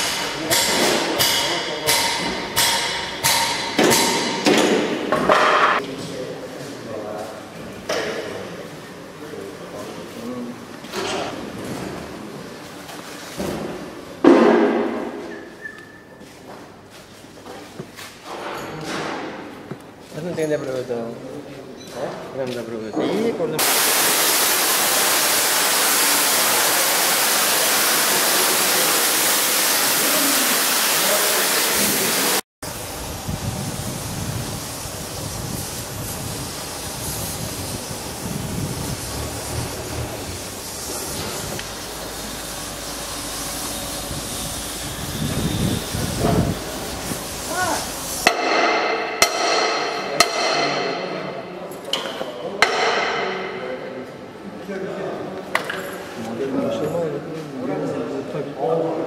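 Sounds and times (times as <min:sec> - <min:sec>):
metallic knocks and clanks: 0:00.0 - 0:05.8
loud steady hiss: 0:23.6 - 0:50.9.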